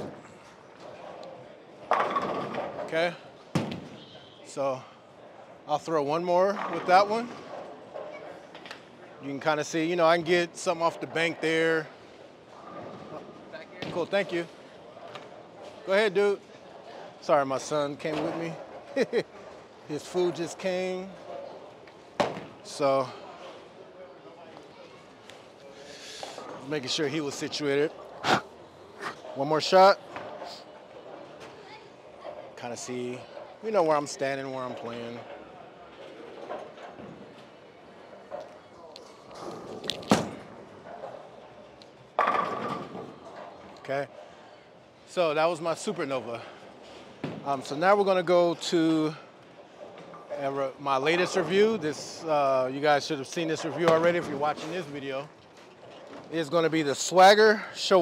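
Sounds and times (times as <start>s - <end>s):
bowling alley background din: 0.0s - 58.0s
faint background chatter: 0.0s - 58.0s.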